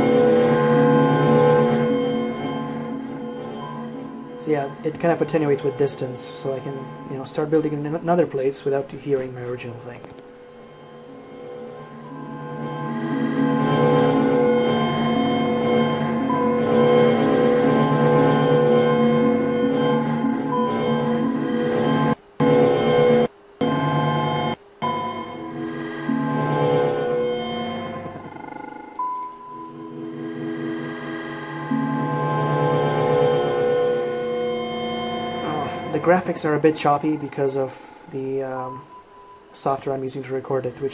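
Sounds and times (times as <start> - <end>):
sustained droning synth tones: 0.0 - 40.9.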